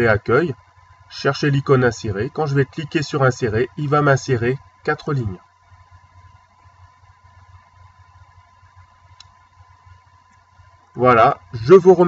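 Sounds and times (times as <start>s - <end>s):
thin steady tone: 0.0s - 12.0s.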